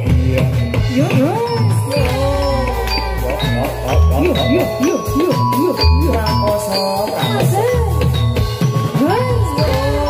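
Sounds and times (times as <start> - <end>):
gamelan music: 0.0 - 10.0
jingling bells: 0.0 - 10.0.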